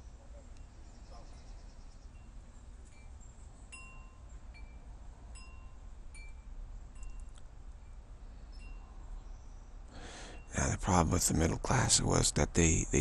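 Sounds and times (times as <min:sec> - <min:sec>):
faint low hum: 0:00.0 - 0:13.0.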